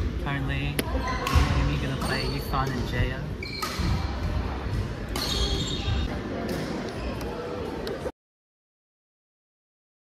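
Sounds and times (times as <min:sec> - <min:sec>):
shoe squeaks: 0:01.8 - 0:02.7, 0:03.4 - 0:04.1, 0:05.2 - 0:06.1
racket hitting shuttlecock: 0:05.1 - 0:05.6.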